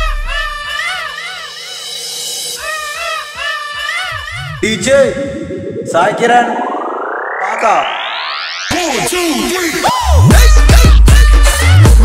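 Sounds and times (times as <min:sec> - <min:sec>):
electronic music with wavering notes: 0:01.4 - 0:11.5.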